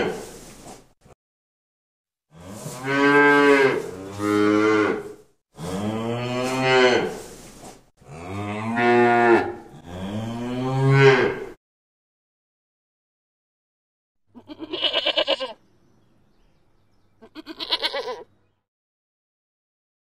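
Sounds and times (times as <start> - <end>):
cattle mooing: 8.0 - 11.6.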